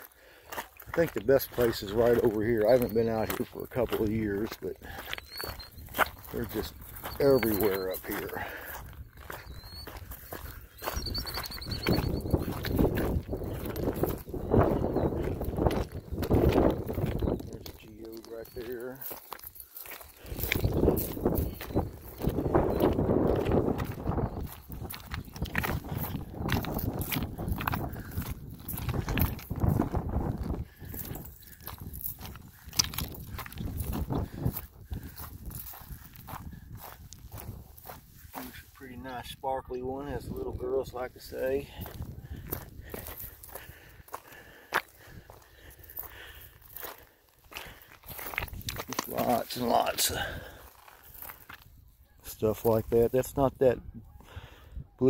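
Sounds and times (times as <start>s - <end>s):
footsteps crunching on gravel: 0.0s - 53.8s.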